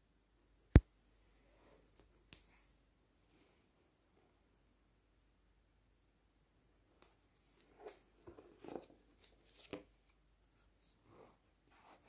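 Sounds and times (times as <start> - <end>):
book pages rustling: 7.4 - 10.2.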